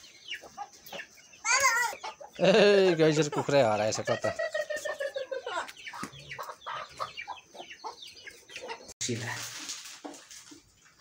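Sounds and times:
chickens clucking: 0.0s - 9.0s.

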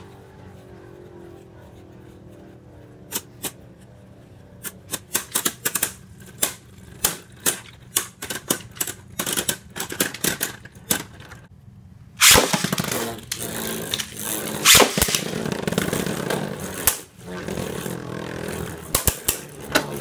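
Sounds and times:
continuous whirring scrape: 0.0s - 20.0s
spinning tops clashing: 12.2s - 15.4s.

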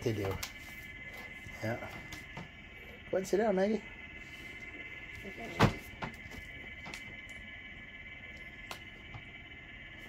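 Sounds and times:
high-pitched hum: 0.0s - 10.0s.

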